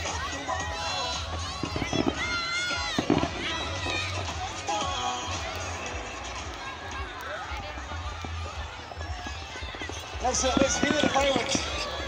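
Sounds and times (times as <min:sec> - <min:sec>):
crowd voices: 0:00.0 - 0:12.0
music over loudspeakers: 0:00.0 - 0:12.0
fireworks: 0:01.1 - 0:07.0, 0:08.1 - 0:12.0
sharp firework pops: 0:01.6 - 0:04.1.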